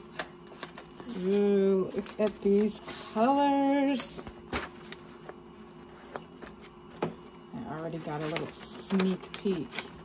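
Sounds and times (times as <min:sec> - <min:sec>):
paper rustling: 0:00.0 - 0:07.1, 0:07.7 - 0:10.0
faint steady hum: 0:00.0 - 0:10.0.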